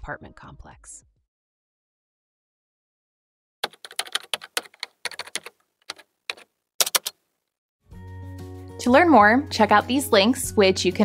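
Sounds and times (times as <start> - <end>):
keyboard key clicks: 3.6 - 7.2.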